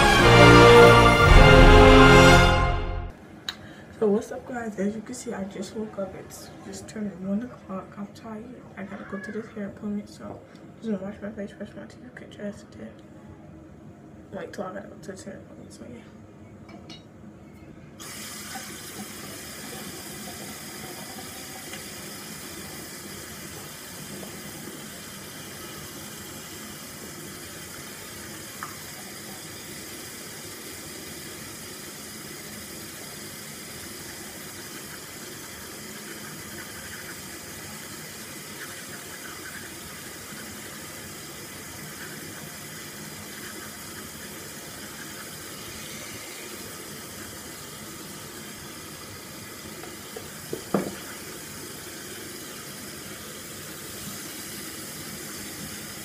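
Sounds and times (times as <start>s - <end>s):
tap running into sink: 28.6s - 29.0s, 49.8s - 51.4s
toothbrush scrubbing: 34.6s - 40.9s, 41.8s - 46.2s.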